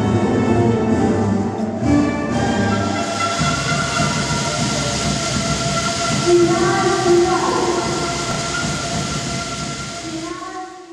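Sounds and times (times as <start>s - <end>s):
distorted band music: 0.2s - 10.3s.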